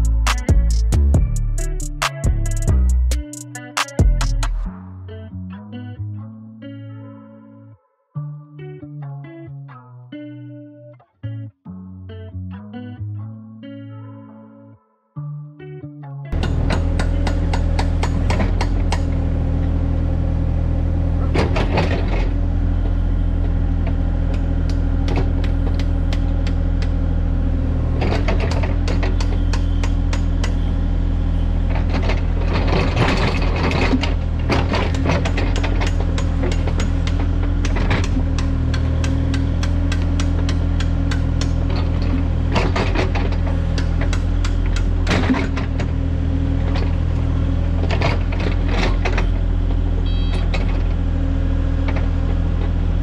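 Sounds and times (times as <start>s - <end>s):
excavator diesel engine running: 0.0s - 4.7s, 16.4s - 53.0s
background music: 0.0s - 18.2s.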